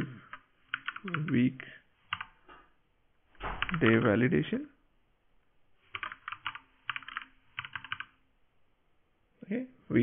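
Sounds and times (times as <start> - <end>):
typing on computer keyboard: 0.2 - 1.4, 2.1 - 2.4, 3.6 - 4.0, 5.9 - 8.2.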